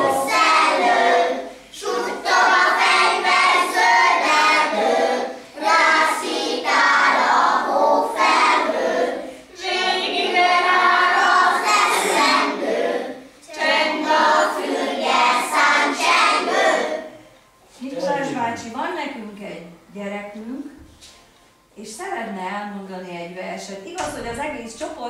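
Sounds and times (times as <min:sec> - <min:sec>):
children singing: 0:00.0 - 0:17.1.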